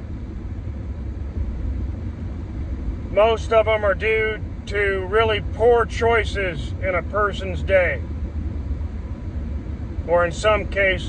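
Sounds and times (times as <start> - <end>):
car interior engine and road noise: 0.0 - 11.0.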